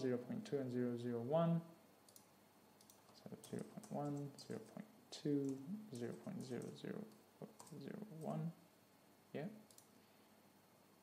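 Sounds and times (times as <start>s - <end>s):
person speaking: 0.0s - 1.8s, 3.0s - 8.6s
faint computer input clicks: 2.1s - 4.7s, 9.7s - 10.0s.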